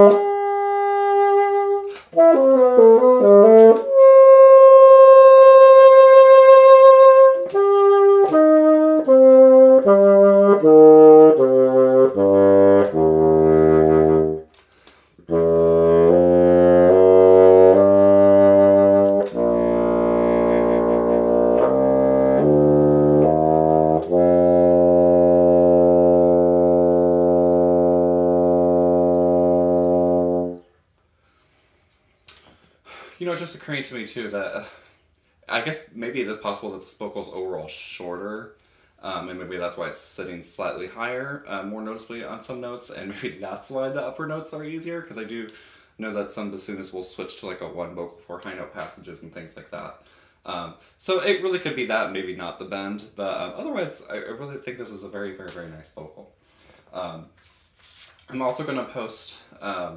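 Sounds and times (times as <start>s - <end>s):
bassoon playing: 0.0s - 14.5s, 15.2s - 30.8s.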